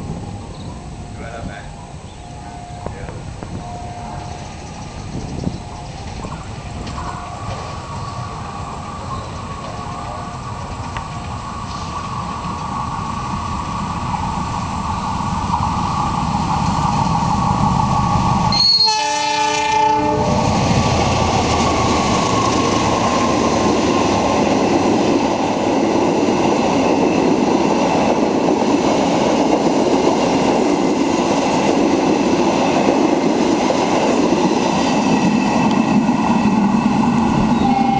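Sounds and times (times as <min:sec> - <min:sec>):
diesel locomotive passing: 0:00.0 - 0:37.9
wheels rolling on rails: 0:03.1 - 0:18.5
train horn: 0:18.5 - 0:20.5, 0:37.5 - 0:37.9.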